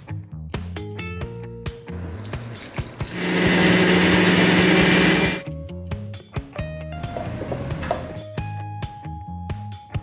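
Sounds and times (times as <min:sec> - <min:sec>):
blender motor whirring: 0:03.0 - 0:05.4.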